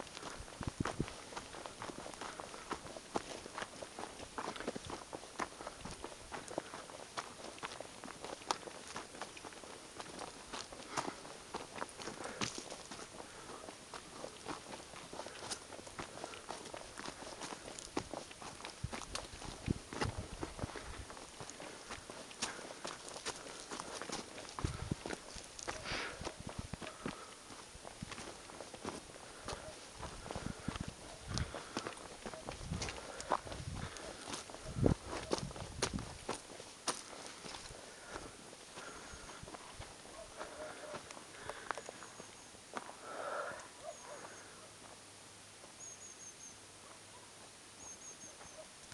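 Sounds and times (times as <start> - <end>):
footsteps on stony dirt trail: 0.0 - 45.0, 47.4 - 48.9.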